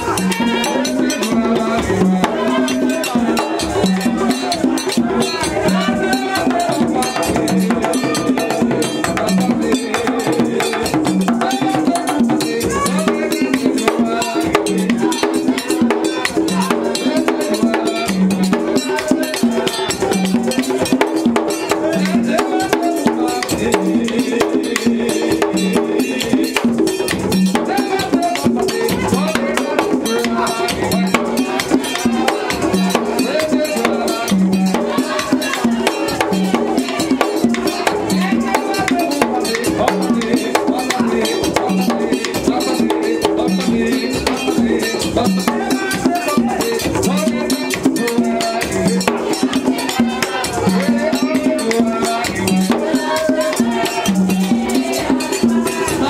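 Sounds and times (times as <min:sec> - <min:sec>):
group singing: 0:00.0 - 0:56.0
hand drums drumming: 0:00.0 - 0:56.0.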